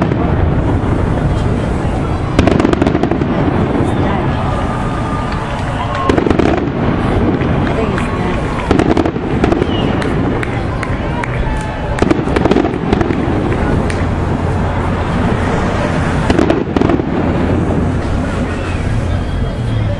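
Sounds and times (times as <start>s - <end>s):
loud noisy background: 0.0s - 19.9s
voices: 0.0s - 19.9s.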